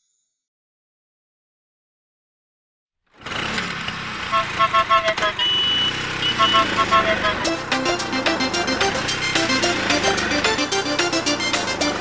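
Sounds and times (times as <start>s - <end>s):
scooter engine running: 3.1s - 12.0s
cheerful plinking music: 6.5s - 12.0s.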